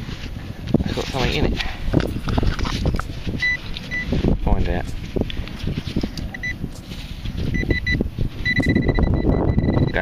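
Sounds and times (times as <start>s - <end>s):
soil clods crunching by hand: 0.8s - 7.6s
metal detector beeping: 3.4s - 4.2s, 6.3s - 6.6s, 7.5s - 10.0s.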